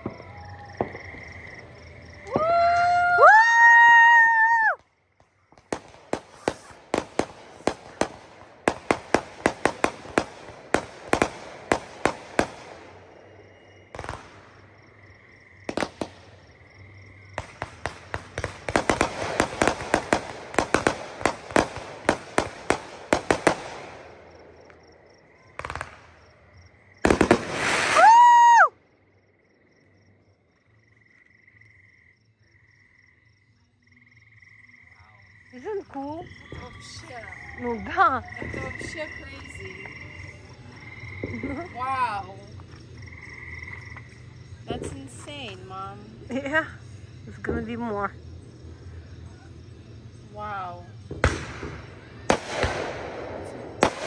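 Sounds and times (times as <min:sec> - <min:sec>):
fireworks crackling bangs: 0:00.0 - 0:02.6, 0:04.8 - 0:14.8, 0:15.6 - 0:16.5, 0:17.3 - 0:24.8, 0:25.5 - 0:26.4, 0:27.0 - 0:28.5, 0:51.1 - 0:54.0
frogs calling faintly: 0:28.9 - 0:51.1.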